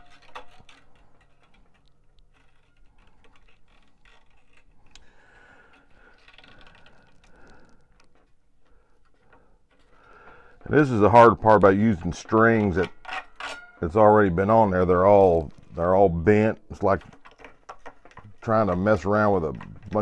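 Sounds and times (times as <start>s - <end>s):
guitar strings clicking and scraping: 0.0s - 20.0s.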